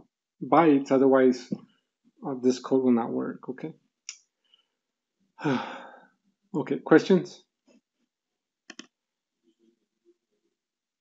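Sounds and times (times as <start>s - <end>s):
computer mouse clicks: 8.7s - 8.9s.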